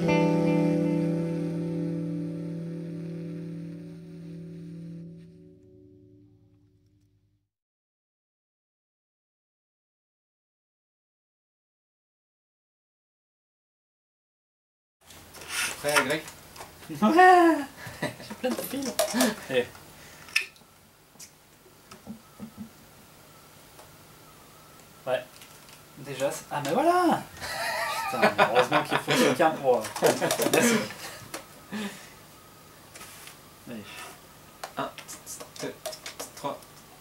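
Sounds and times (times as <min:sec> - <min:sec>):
electric guitar chord ringing: 0:00.0 - 0:07.2
laughter: 0:17.8 - 0:18.4, 0:27.4 - 0:31.3
man speaking: 0:26.0 - 0:27.3, 0:28.1 - 0:30.9.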